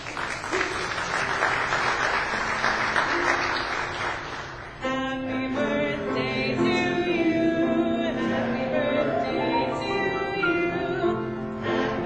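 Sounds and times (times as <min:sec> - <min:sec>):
congregation applauding: 0:00.0 - 0:04.8.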